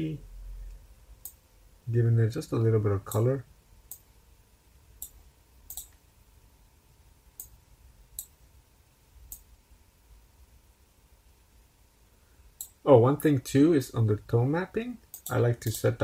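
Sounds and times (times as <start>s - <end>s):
computer mouse clicking: 5.0s - 6.0s, 7.4s - 7.6s, 15.1s - 15.4s.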